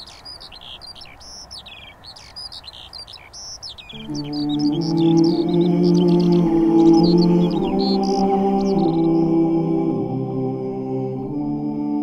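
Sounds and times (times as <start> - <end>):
birds chirping and whistling: 0.0 - 9.4
low chord background music: 3.9 - 12.0.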